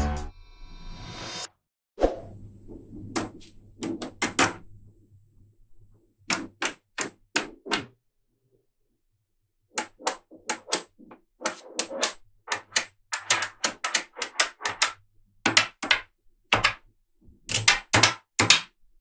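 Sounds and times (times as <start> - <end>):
magnetic balls clicking: 3.0 - 4.9, 5.6 - 7.9, 9.6 - 19.0.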